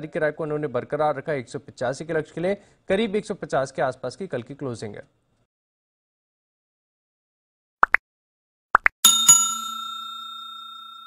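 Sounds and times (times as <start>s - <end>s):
notification bell ringing: 9.0s - 11.0s.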